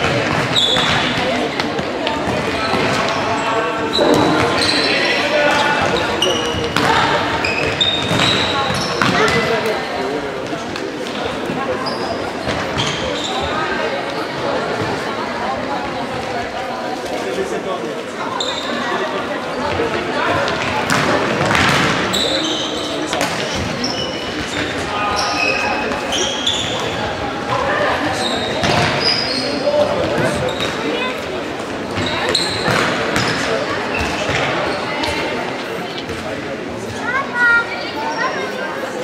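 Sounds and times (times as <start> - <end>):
spectators chattering: 0.0 - 39.0
sports shoes squeaking on floor: 0.4 - 1.2, 2.3 - 9.5, 11.7 - 13.7, 18.3 - 19.7, 22.1 - 27.0, 28.0 - 31.1, 31.9 - 35.2.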